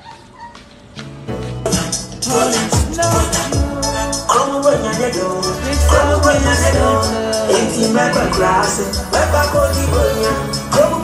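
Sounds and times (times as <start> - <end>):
background music with steady beat: 0.7 - 11.0.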